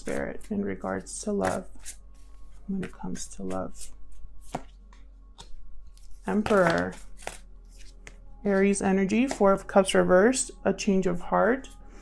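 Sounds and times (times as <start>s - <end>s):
cards being shuffled: 1.4s - 9.6s.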